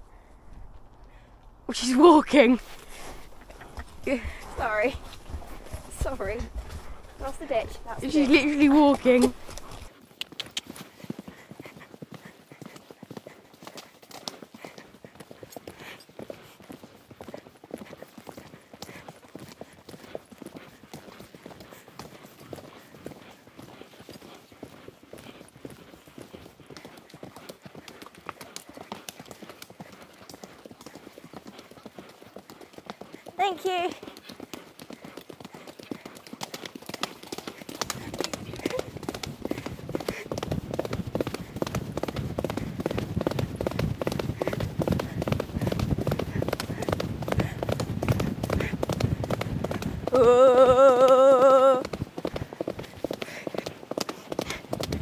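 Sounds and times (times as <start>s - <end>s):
rushing low noise: 0.0s - 8.1s
horse hooves on wet gravel: 0.0s - 55.0s.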